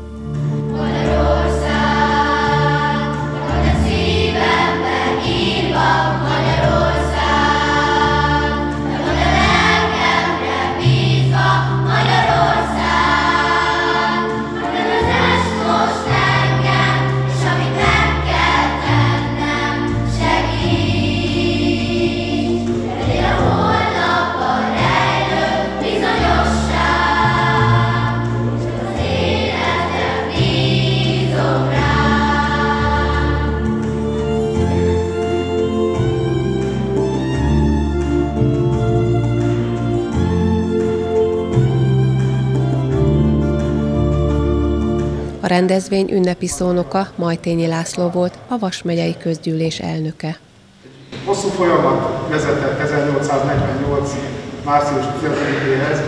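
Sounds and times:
children's choir singing: 0.0 - 45.2, 51.2 - 56.0
low accompaniment notes: 0.0 - 49.6, 50.9 - 56.0.

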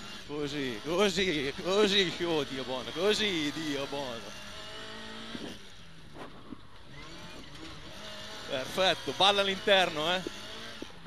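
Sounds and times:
rally car engine running: 0.0 - 11.0
road noise: 0.0 - 11.0.

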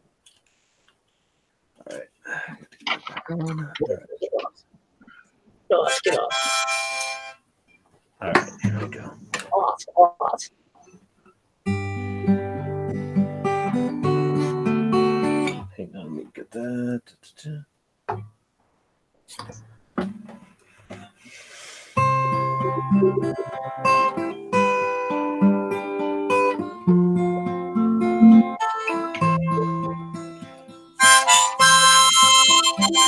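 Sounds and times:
acoustic guitar plucked: 11.7 - 15.7, 22.0 - 33.0
faint hiss: 20.6 - 22.0.

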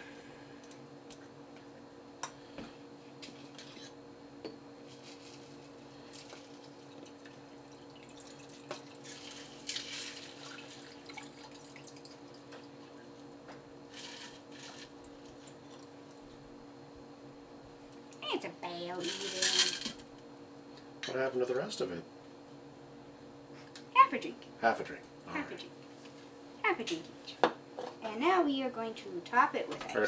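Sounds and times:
liquid trickling over ice: 6.1 - 13.0.

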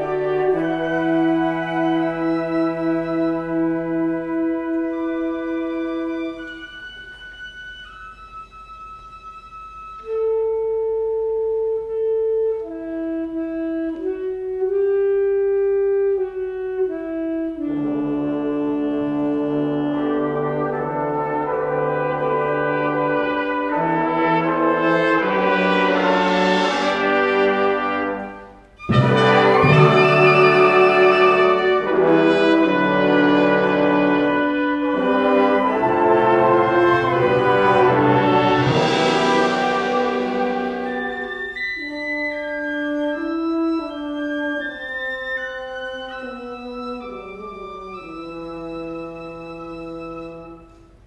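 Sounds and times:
wind instrument long note: 0.0 - 51.0
brass section playing chords: 16.4 - 50.8.

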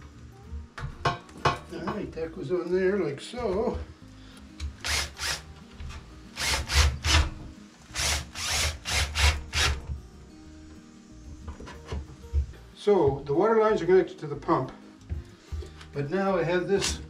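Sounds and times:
power driver bursts: 4.8 - 5.4.

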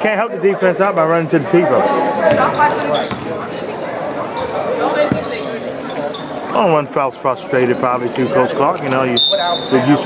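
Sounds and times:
basketball bouncing on gym floor: 2.3 - 3.3, 5.0 - 5.4.

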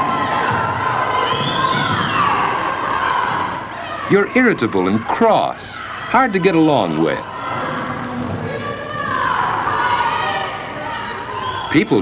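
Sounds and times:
boys shouting and cheering: 0.0 - 12.0.

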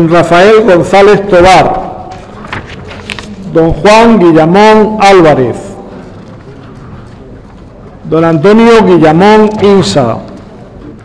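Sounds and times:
hall room noise: 0.0 - 11.0
faint murmur of voices: 5.5 - 8.5.

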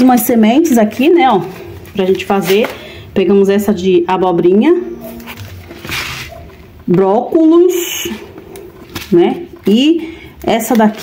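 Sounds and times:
paper packet rustling: 0.0 - 3.0, 5.0 - 11.0.

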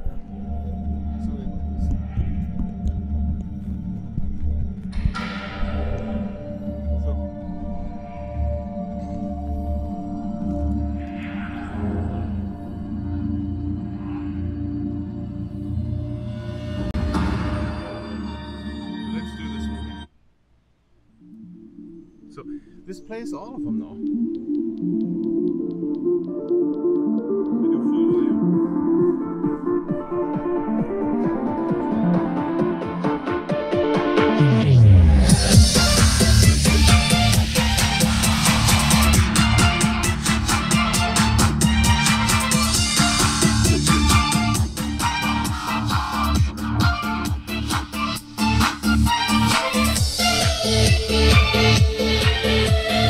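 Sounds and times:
electronic dance music: 23.4 - 53.0.

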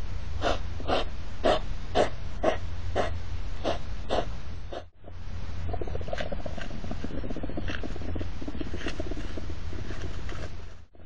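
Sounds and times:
hedgehogs puffing and snorting: 0.4 - 5.0, 5.7 - 11.0.

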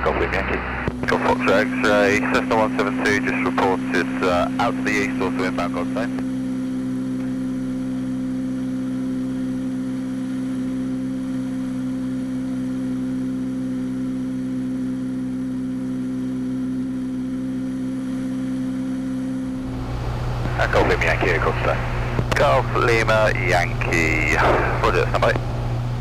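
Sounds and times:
propeller plane engine droning: 0.0 - 26.0.

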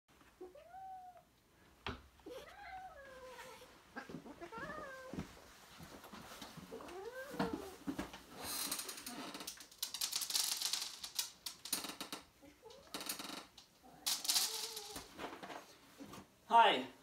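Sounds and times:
cats meowing: 0.2 - 1.3, 2.2 - 5.3, 6.7 - 7.9, 12.4 - 15.1.

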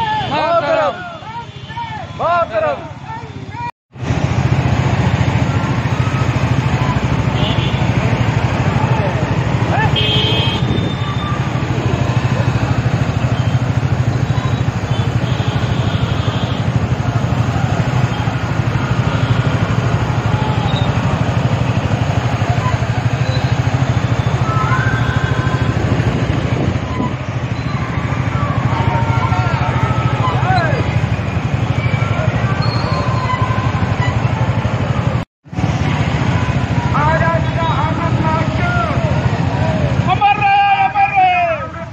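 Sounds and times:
motorcycle engines rumbling: 0.0 - 41.9
wind buffeting microphone: 25.5 - 27.5.

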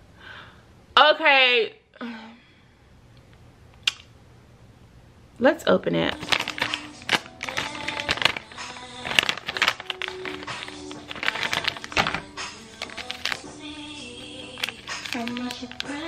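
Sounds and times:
background music: 6.1 - 16.0
plastic packaging crackling and ripping: 6.1 - 16.0.

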